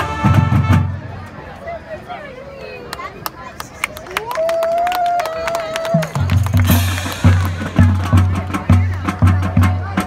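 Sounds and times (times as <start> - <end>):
people's voices: 0.6 - 10.0.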